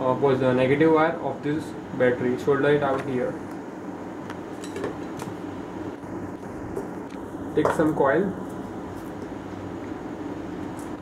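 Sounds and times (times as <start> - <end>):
steady low background noise: 0.0 - 11.0.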